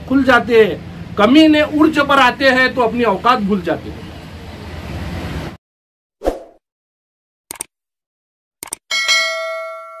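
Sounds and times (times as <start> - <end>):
notification bell ding: 8.9 - 10.0.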